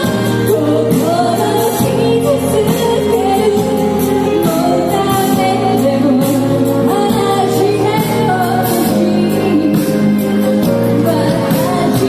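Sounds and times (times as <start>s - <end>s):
woman singing into microphone: 0.0s - 12.0s.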